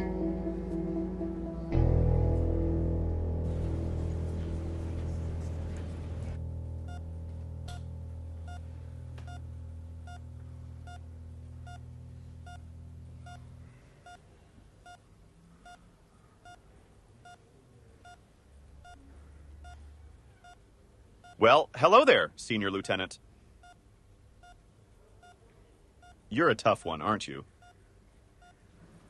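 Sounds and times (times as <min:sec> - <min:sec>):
low sustained music: 0:00.0 - 0:13.7
patient monitor beeping: 0:06.8 - 0:07.1, 0:07.7 - 0:21.6, 0:23.6 - 0:24.6, 0:25.2 - 0:25.4, 0:26.0 - 0:26.3, 0:27.5 - 0:27.8, 0:28.4 - 0:28.7.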